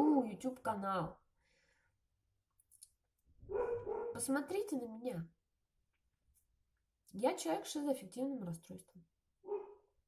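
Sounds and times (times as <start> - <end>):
woman speaking: 0.0 - 1.2, 4.1 - 5.4, 7.1 - 9.0.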